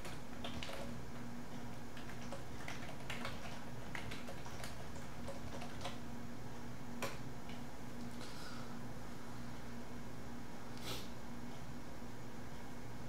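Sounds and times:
computer keyboard typing: 0.0s - 1.0s, 1.6s - 6.0s
steady low hum: 0.0s - 13.0s.

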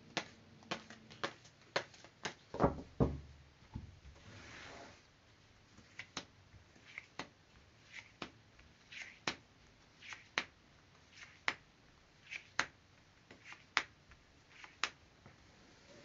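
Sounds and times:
cards sliding: 5.8s - 11.6s, 12.2s - 12.7s, 13.3s - 13.9s, 14.5s - 15.0s.

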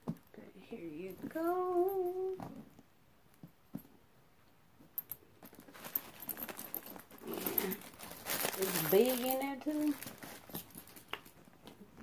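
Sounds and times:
handbag rustling and crinkling: 5.0s - 12.0s.

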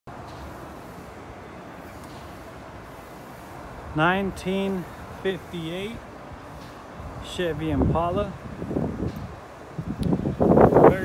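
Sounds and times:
even hiss: 0.3s - 8.3s.

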